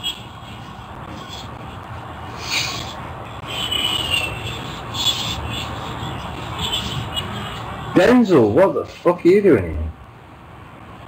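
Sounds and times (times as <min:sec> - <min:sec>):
steady low hum: 0:00.0 - 0:11.0
hand rubbing against face: 0:02.3 - 0:07.8.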